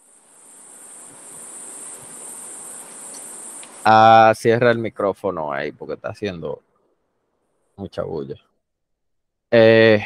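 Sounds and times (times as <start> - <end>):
high-pitched microphone whine: 0.0 - 4.7
soft hiss: 0.0 - 8.3.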